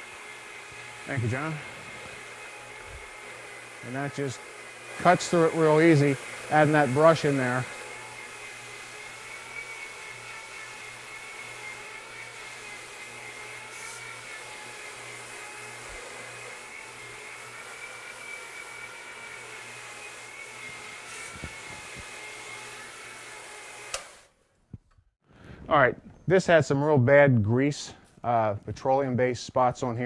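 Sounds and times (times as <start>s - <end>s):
floor scrubbing machine running: 0.0s - 24.2s.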